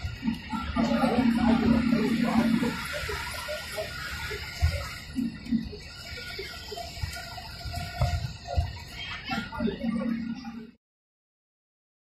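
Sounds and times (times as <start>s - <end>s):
bus ride low rumble: 0.0s - 10.8s.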